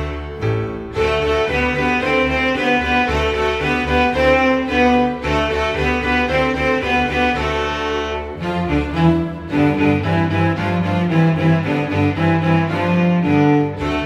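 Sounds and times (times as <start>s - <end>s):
cello bowed melody: 0.0s - 14.0s
string orchestra accompaniment: 0.0s - 14.0s.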